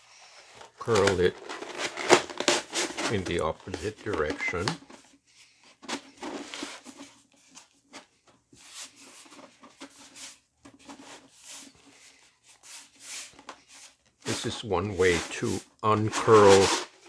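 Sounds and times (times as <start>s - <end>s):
paper rubbing and rustling: 0.6s - 5.0s, 8.6s - 17.0s.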